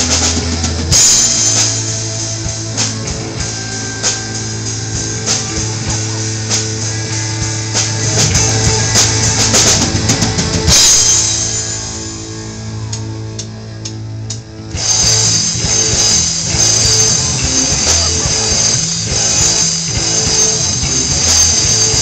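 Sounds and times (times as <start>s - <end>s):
rock band playing: 0.0s - 22.0s.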